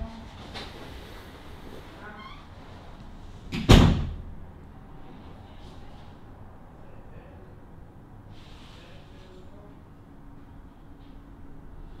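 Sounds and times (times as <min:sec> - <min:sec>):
faint squeak: 0:01.9 - 0:02.8
loud thump: 0:03.5 - 0:04.3.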